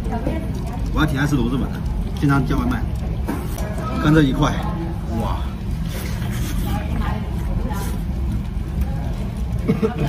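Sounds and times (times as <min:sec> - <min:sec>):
faint chatter: 0:00.0 - 0:10.0
restaurant rumble: 0:00.0 - 0:10.0.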